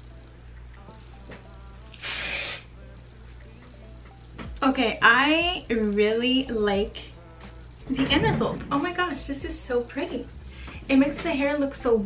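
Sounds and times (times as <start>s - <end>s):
aerosol hair spray: 1.9s - 2.7s.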